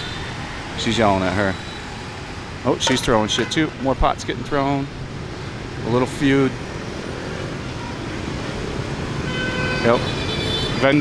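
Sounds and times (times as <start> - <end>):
cars and scooters passing: 0.0 - 11.0.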